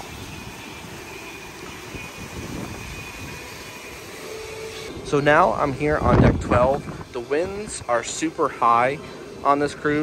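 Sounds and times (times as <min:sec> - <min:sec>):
wind buffeting microphone: 0:01.7 - 0:03.6, 0:04.9 - 0:08.1.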